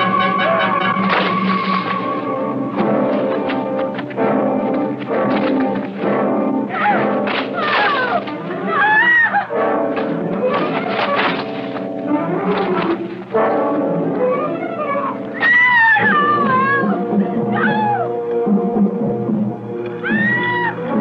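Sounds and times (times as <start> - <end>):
orchestral music led by brass: 0.0 - 8.7, 9.4 - 19.8.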